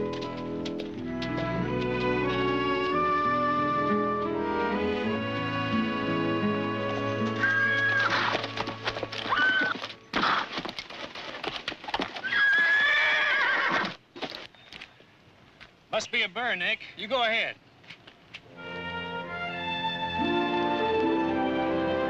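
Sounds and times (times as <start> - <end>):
orchestral music: 0.0 - 9.3, 18.5 - 22.0
hooves clopping: 0.0 - 15.8
horses neighing: 3.8 - 10.7, 12.0 - 14.0.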